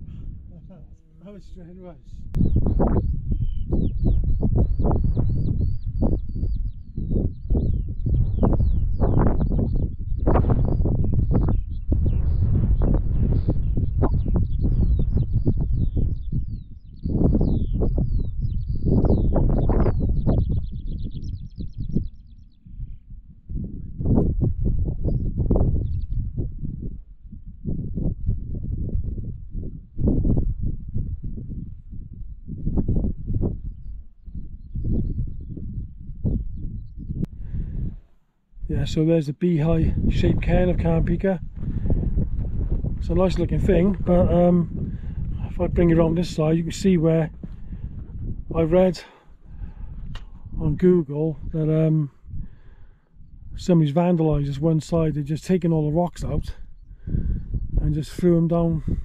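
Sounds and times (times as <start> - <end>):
wind buffeting microphone: 0.0 - 59.0
songbird chirping rapidly: 13.5 - 23.0.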